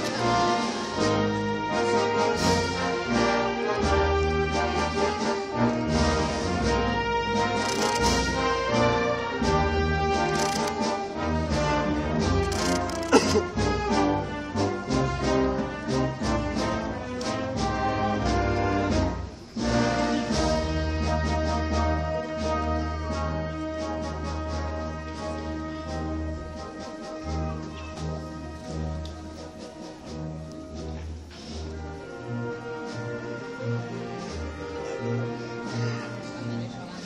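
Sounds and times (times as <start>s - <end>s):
brass and wind band march: 0.0s - 37.0s.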